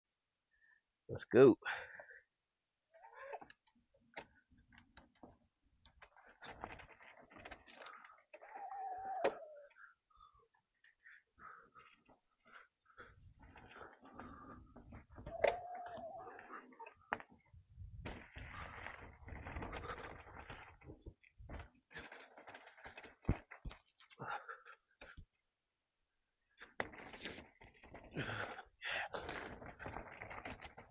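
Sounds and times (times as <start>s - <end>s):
bike rattling over dirt trail: 6.2s - 7.8s, 18.0s - 23.6s, 29.2s - 30.9s.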